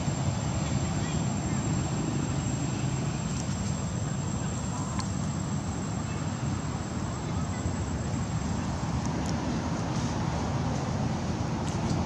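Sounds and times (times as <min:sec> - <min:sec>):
insects droning high-pitched: 0:00.0 - 0:09.0.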